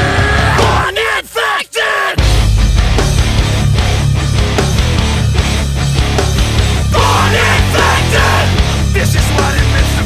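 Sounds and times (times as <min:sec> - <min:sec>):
hardcore band playing live: 0:00.0 - 0:01.0, 0:02.2 - 0:10.0
person shouting: 0:00.0 - 0:02.2, 0:06.9 - 0:08.6.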